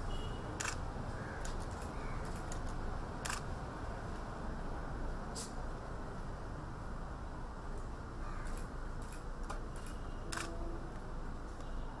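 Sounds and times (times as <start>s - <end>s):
camera shutter clicking: 0.6s - 0.8s, 3.2s - 3.4s, 9.8s - 10.6s.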